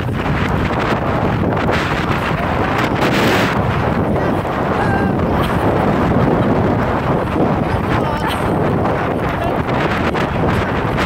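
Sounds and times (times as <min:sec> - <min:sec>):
strong wind buffeting microphone: 0:00.0 - 0:11.0
surf breaking: 0:00.0 - 0:11.0.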